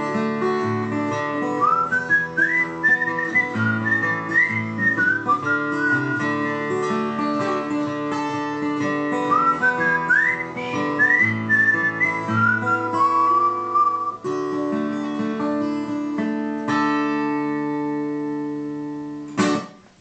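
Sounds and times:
acoustic guitar strumming: 0.0s - 20.0s
person whistling a melody: 1.4s - 6.6s, 9.2s - 14.3s.

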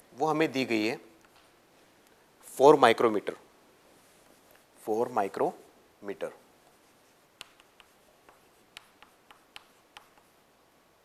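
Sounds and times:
chalk tapping on chalkboard: 6.7s - 10.4s.

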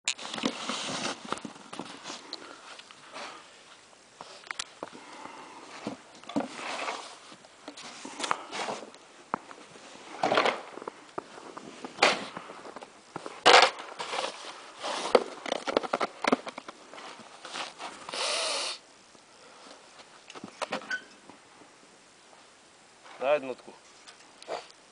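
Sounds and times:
snow shovel scraping: 0.2s - 1.4s, 6.4s - 8.9s, 13.3s - 15.4s.

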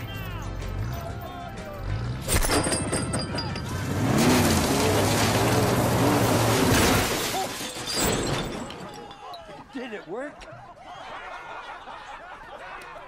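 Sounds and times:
metal crashing and tearing: 2.3s - 9.1s
truck engine running hard: 3.4s - 7.0s.

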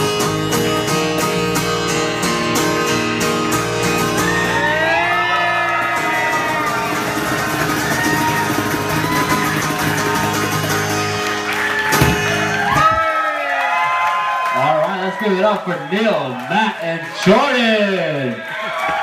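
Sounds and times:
acoustic guitars and cajon: 0.0s - 13.0s
people whooping: 4.0s - 19.0s.

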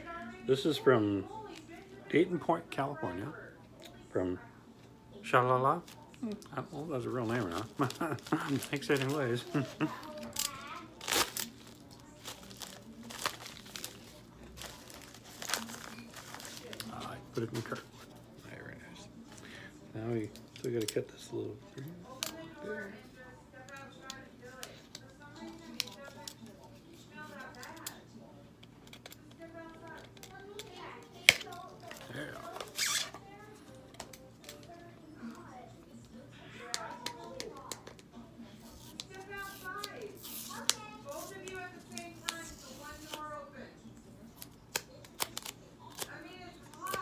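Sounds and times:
faint background voices: 0.0s - 47.0s
faint music: 0.0s - 47.0s
cardboard rustling and tearing: 7.2s - 18.2s.

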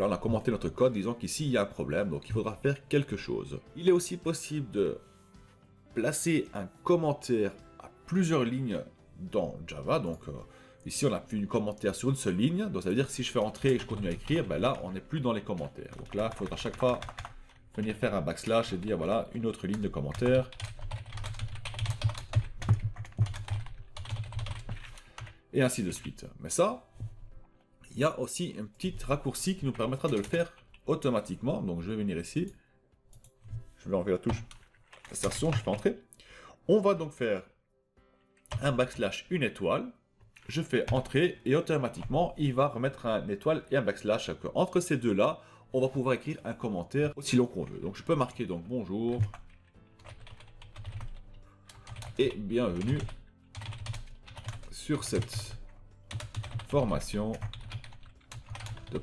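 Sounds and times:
typing on keyboard: 12.8s - 25.4s, 28.9s - 31.2s, 34.3s - 35.9s, 38.4s - 38.7s, 40.8s - 41.2s, 41.9s - 42.4s, 49.1s - 59.0s.

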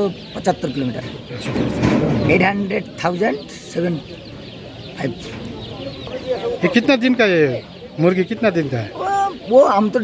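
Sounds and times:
chicks cheeping: 0.0s - 10.0s.

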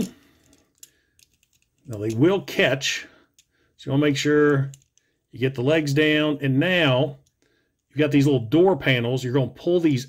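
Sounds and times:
toy plastic clicks: 4.6s - 5.1s.

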